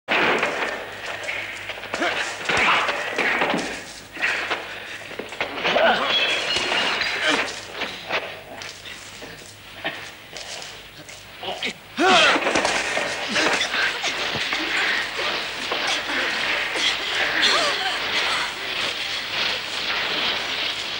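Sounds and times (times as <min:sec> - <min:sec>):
shouts and grunts: 0:12.0 - 0:12.4
loud cry: 0:12.0 - 0:12.6
thuds knocks and crashes: 0:12.1 - 0:20.9.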